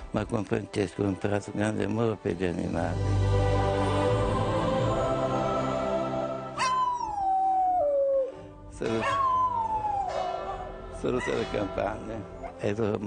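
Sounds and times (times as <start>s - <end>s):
dog howling: 6.6s - 11.7s.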